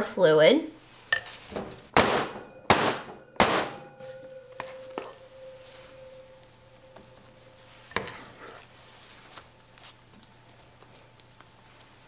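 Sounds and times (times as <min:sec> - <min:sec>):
faint ringing tone: 0:02.4 - 0:09.3.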